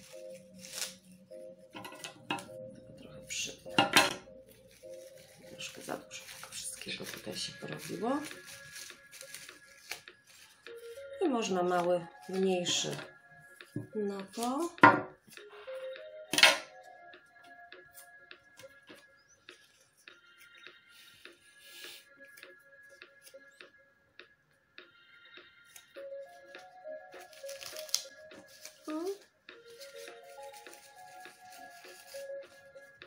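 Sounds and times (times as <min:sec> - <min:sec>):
soft background music: 0:00.0 - 0:33.0
paper rustling and clicking: 0:04.6 - 0:11.0, 0:26.4 - 0:33.0.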